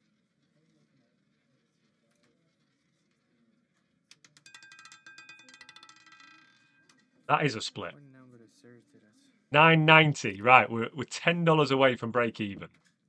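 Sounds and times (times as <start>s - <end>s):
roulette ball clattering on wheel: 4.1s - 7.1s.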